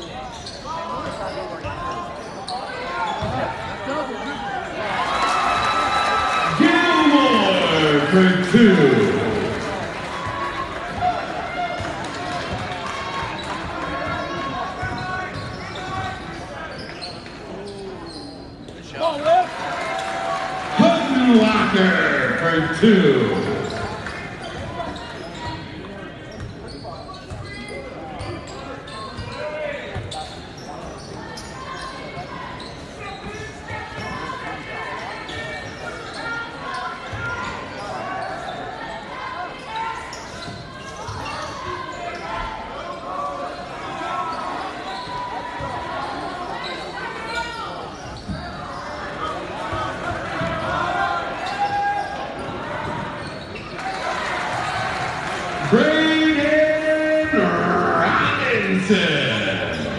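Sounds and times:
spectators' voices and calls: 0.0s - 59.9s.

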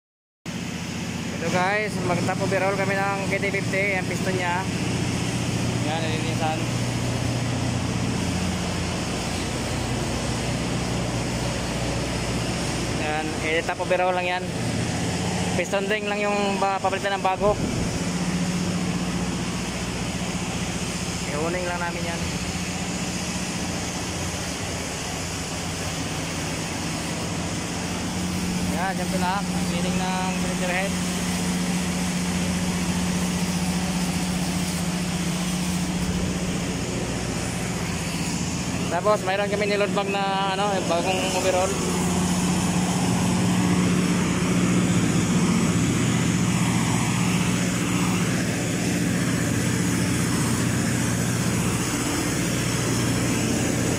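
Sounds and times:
machine drone: 0.5s - 53.9s.

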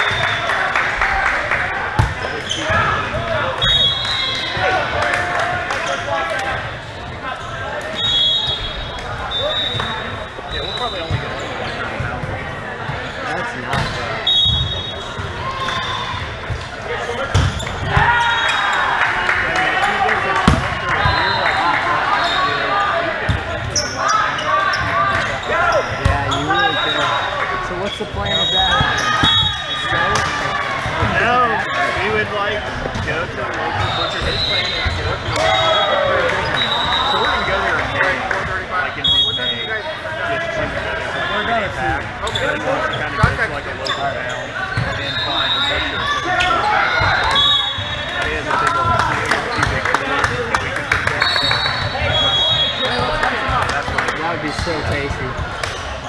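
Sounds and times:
players' voices: 0.0s - 56.0s
sneakers squeaking on court floor: 2.0s - 4.7s, 7.3s - 18.8s, 23.3s - 30.3s, 32.8s - 37.6s, 41.3s - 48.1s, 51.2s - 53.6s, 54.4s - 56.0s.

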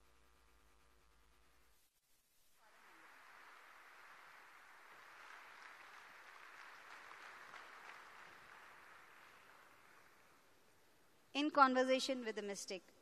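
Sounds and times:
audience applause: 2.6s - 10.9s.

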